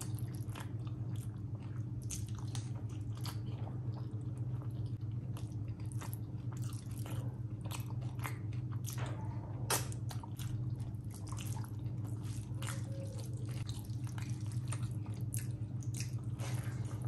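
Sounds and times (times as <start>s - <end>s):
steady low hum: 0.0s - 17.0s
wet chewing and lip-smacking: 0.0s - 17.0s.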